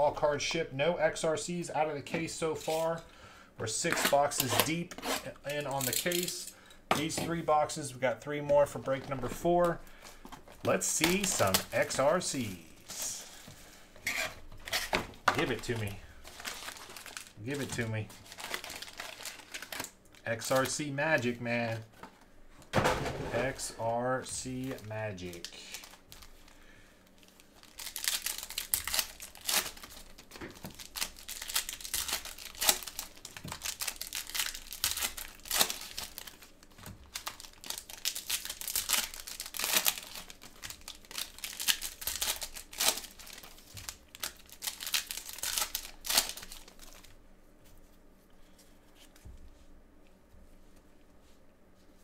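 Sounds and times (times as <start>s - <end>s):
foil wrappers crinkling and tearing: 9.0s - 13.8s, 14.4s - 21.8s, 24.4s - 47.2s.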